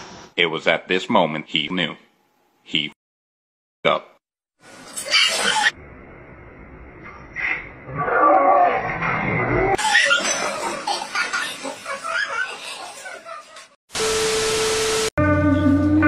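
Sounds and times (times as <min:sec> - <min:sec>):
men laughing: 0:09.8 - 0:13.8
tv static hiss with tone: 0:14.0 - 0:15.1.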